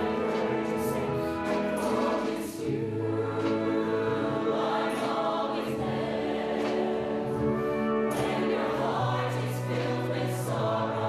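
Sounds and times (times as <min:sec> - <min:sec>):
live band with brass: 0:00.0 - 0:02.7, 0:07.3 - 0:08.8
choir singing held chords: 0:00.0 - 0:11.0.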